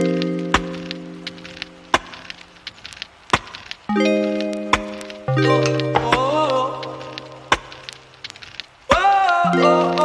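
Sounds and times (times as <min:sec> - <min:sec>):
held music chords: 0:00.0 - 0:02.5, 0:03.9 - 0:08.3
light ticks: 0:00.0 - 0:10.0
sharp clicks: 0:00.0 - 0:10.0.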